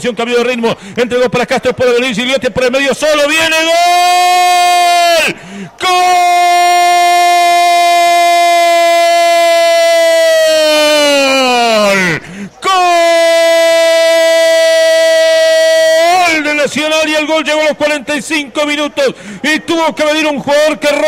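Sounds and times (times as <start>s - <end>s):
man speaking fast: 0.0s - 4.4s, 16.0s - 21.0s
commentator's drawn-out goal cry: 2.9s - 21.0s.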